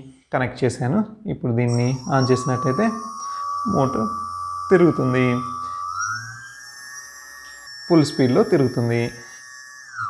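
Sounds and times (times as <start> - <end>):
electric motor whining: 1.7 - 10.0.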